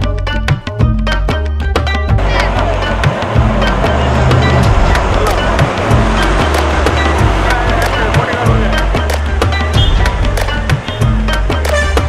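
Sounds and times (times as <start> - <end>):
deep bass line: 0.0 - 12.0
driving drum beat: 0.0 - 12.0.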